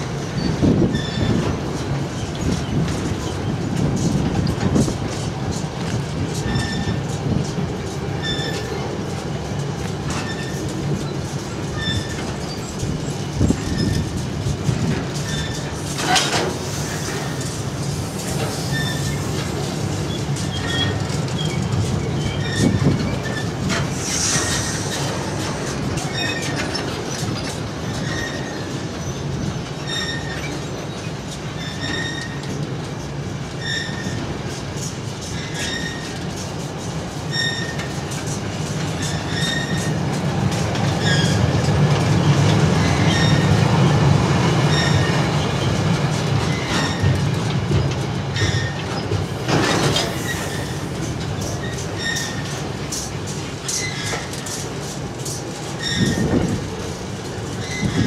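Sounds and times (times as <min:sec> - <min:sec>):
wheel squeaks: 0:00.2 - 0:09.1, 0:10.1 - 0:17.4, 0:18.4 - 0:43.6, 0:44.7 - 0:58.0.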